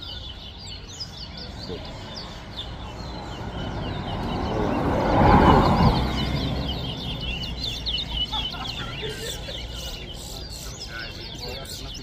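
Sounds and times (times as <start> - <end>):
finch chirping: 0.0 - 12.0
loud rushing noise: 3.4 - 7.5.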